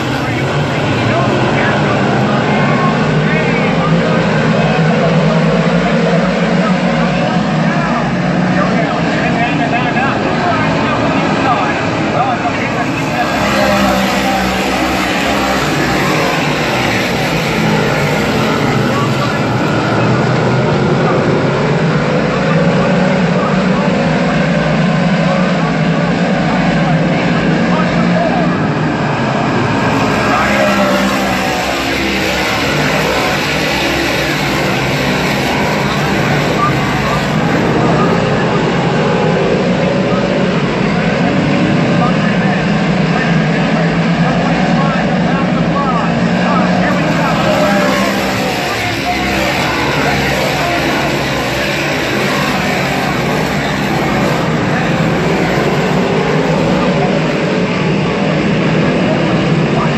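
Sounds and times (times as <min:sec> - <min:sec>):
race car engines passing by: 0:00.0 - 0:59.9.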